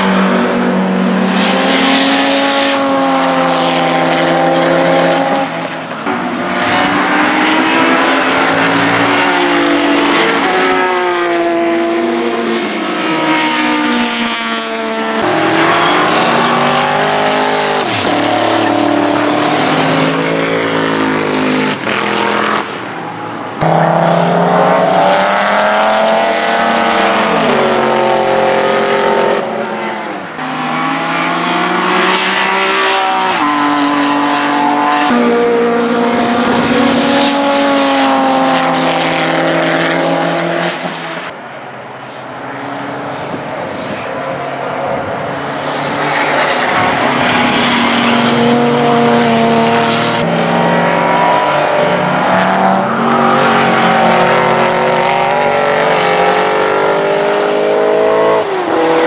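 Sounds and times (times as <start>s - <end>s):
racing car engines passing: 0.0s - 59.0s.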